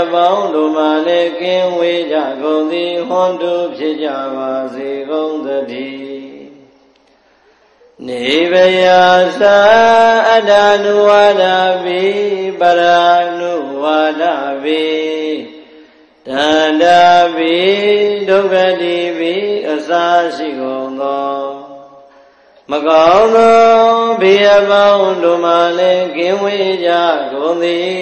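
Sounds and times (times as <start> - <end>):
man chanting: 0.0 - 6.6, 8.0 - 22.1, 22.7 - 28.0.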